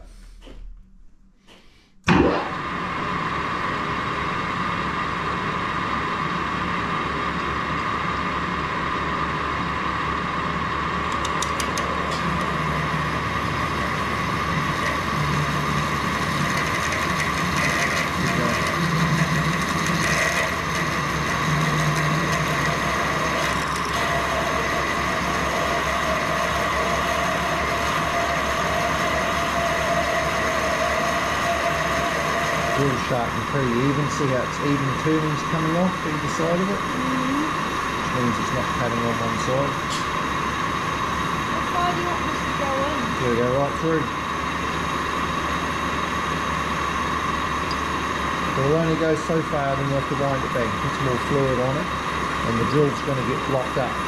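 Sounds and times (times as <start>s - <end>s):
metal lathe whining: 4.9s - 54.0s.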